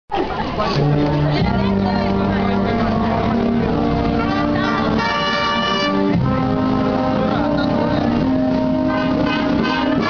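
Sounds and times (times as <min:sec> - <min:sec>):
brass band playing slow march: 0:00.8 - 0:10.0.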